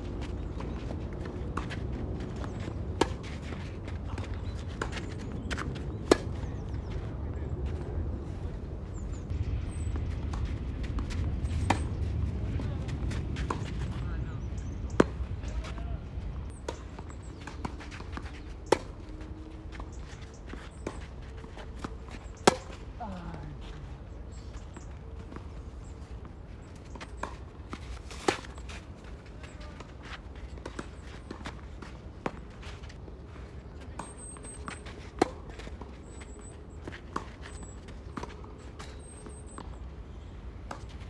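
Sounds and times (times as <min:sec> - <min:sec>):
tennis ball hit and bounce: 0:10.3 - 0:12.0, 0:14.9 - 0:15.8, 0:20.0 - 0:22.8, 0:33.9 - 0:35.8.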